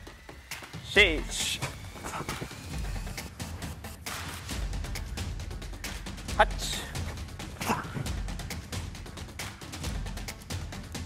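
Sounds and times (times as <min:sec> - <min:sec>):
workout music: 0:00.0 - 0:11.0
man shouting: 0:00.9 - 0:01.7.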